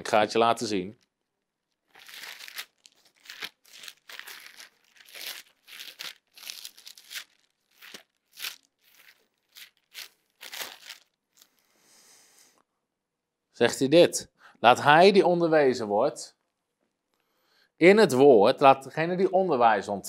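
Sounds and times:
thin pages rustling: 1.8s - 11.6s.

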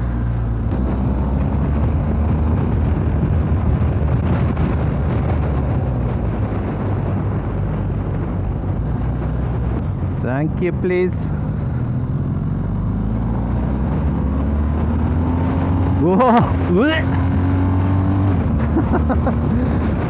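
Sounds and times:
motorcycle engine running: 0.0s - 20.0s
wind rush on microphone: 0.0s - 20.0s.

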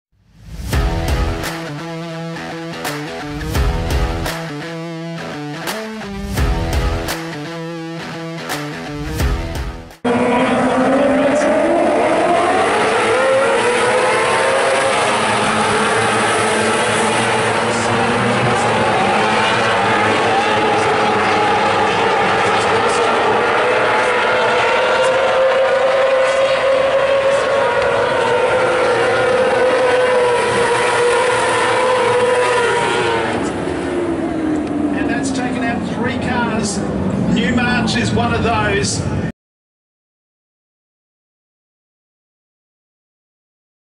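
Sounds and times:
race car engines: 10.0s - 39.3s.

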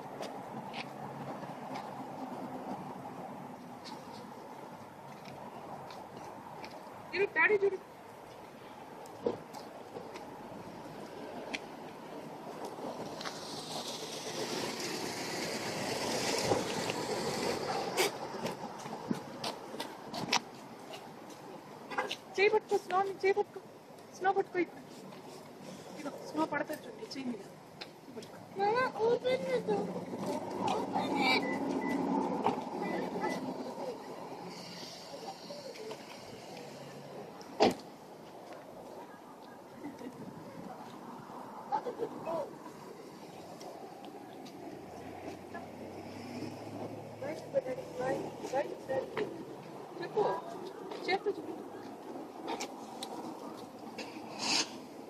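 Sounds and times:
outdoor background noise: 0.0s - 55.0s
passing vehicle rush: 0.0s - 55.0s
faint voices: 20.8s - 54.4s.

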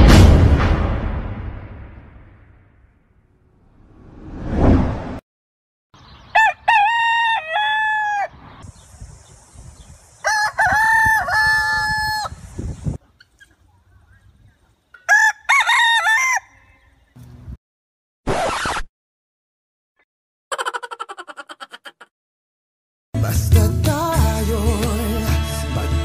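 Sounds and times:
rooster crowing: 6.3s - 8.4s, 10.2s - 12.4s, 15.0s - 17.0s.

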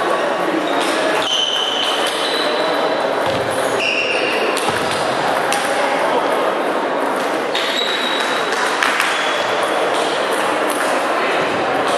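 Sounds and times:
large hall noise: 0.0s - 11.9s.

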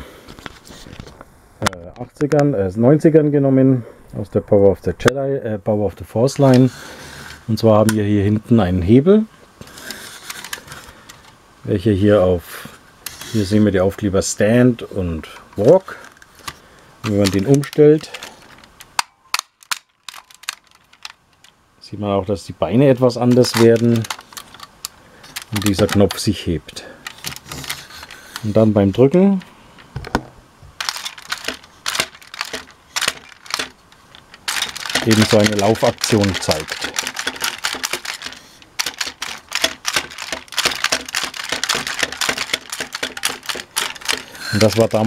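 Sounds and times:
sharp plastic toy clicks: 16.0s - 21.6s, 23.3s - 26.2s, 30.8s - 45.0s.

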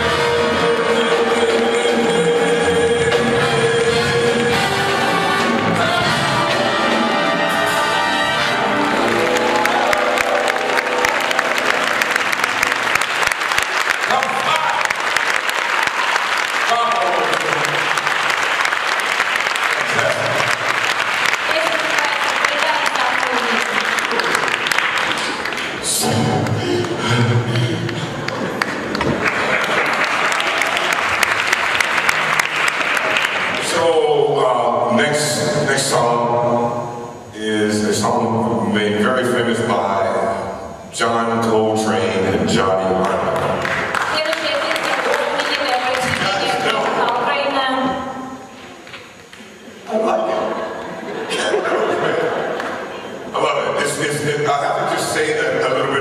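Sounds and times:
big band jazz chords: 0.0s - 13.0s
audience applause: 8.2s - 34.2s, 42.5s - 47.6s, 48.5s - 55.6s.

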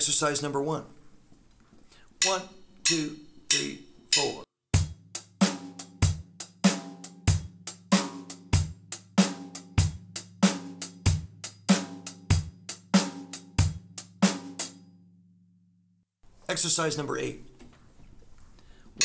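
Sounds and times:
drum kit shuffle groove: 2.2s - 14.8s.

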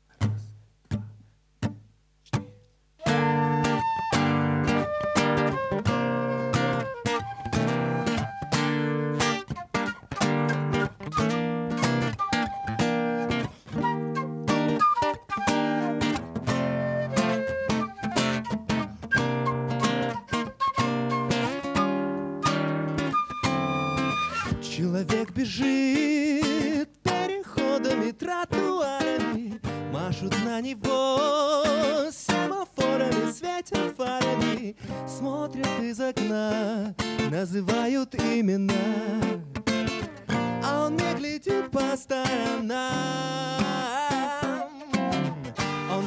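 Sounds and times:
acoustic guitar strumming: 0.2s - 46.0s
flute melody: 3.0s - 24.9s, 43.6s - 46.0s.

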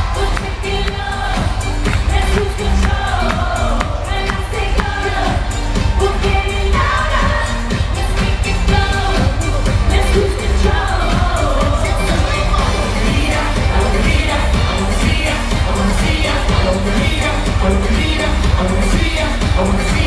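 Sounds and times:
heavy bass beat: 0.0s - 20.0s
woman singing: 0.0s - 20.0s.

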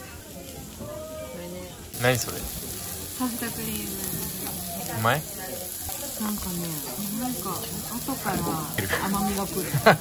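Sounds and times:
meat sizzling on grill pan: 0.3s - 10.0s.

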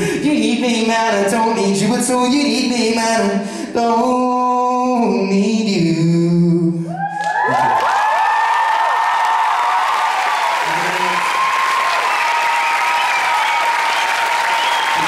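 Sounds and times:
high-pitched cheering voices: 6.9s - 15.0s
audience clapping: 7.2s - 15.0s.

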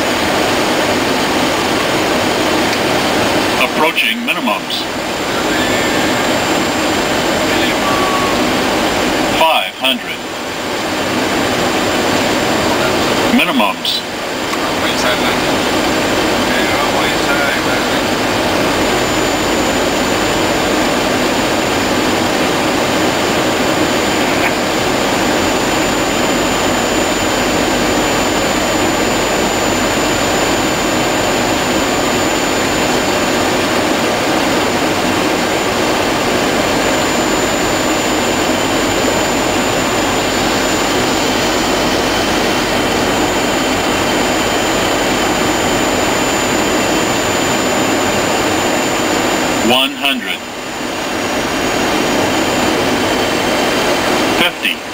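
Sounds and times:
airflow over fuselage: 0.0s - 54.9s
high-pitched whine: 0.0s - 54.9s
jet engines: 0.0s - 54.9s.

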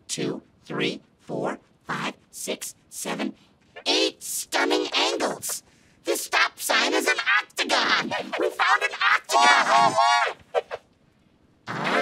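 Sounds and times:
pitch-shifted man's voice speaking: 0.0s - 10.4s.

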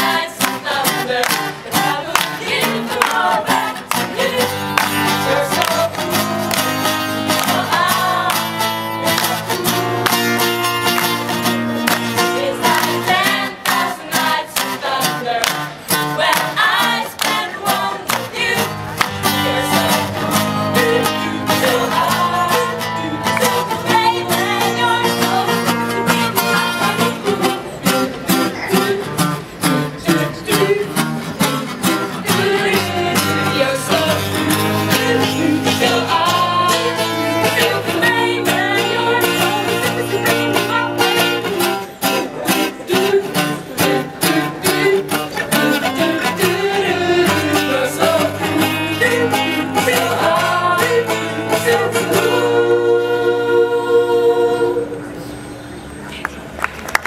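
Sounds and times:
young women singing together: 0.0s - 10.5s, 11.9s - 27.8s, 30.0s - 31.2s, 31.9s - 55.2s
acoustic guitar strumming: 0.0s - 55.5s.

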